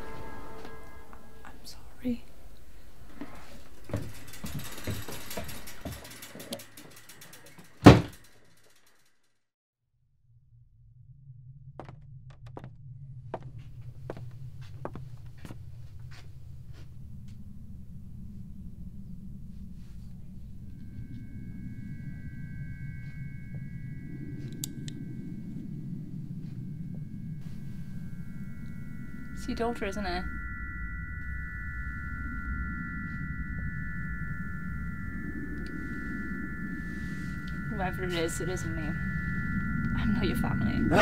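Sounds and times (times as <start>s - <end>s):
low rumble: 0.0s - 8.4s, 10.0s - 41.0s
low steady hum: 0.0s - 8.4s, 10.3s - 41.0s
high ringing held tones: 0.0s - 9.1s, 13.1s - 41.0s
soft scratching: 18.4s - 22.2s.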